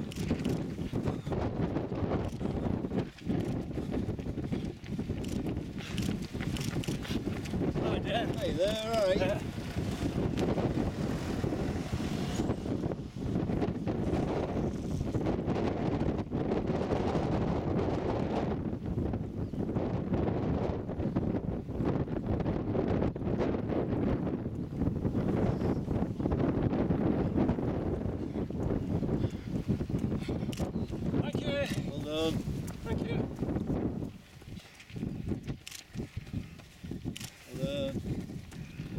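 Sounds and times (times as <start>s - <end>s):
wind blowing across microphone: 0.0s - 38.9s.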